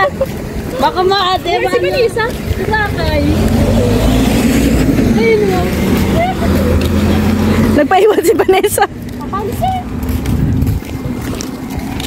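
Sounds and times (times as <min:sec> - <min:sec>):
vehicle engine passing: 0:00.0 - 0:12.0.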